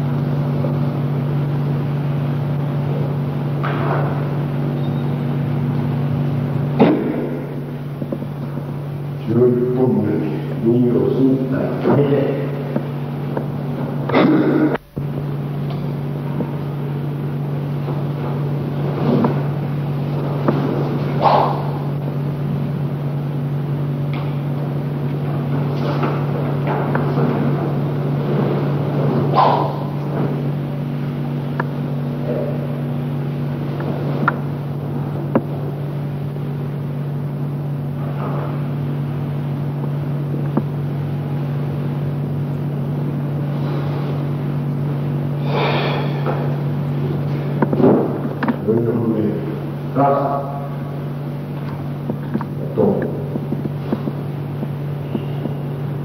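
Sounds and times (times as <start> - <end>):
steady low hum: 0.0 - 56.0
short sharp noises: 20.7 - 21.9, 28.6 - 30.0.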